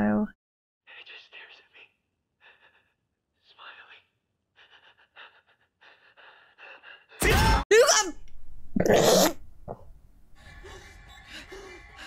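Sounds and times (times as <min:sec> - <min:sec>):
whispered dialogue: 0:00.9 - 0:02.8, 0:03.4 - 0:04.2.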